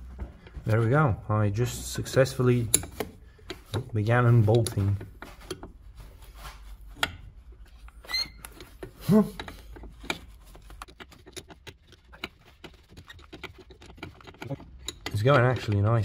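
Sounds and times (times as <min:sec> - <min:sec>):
spanner clicking on metal fitting: 0:02.2 - 0:03.8, 0:13.3 - 0:15.9
brief squeak: 0:08.0 - 0:08.4.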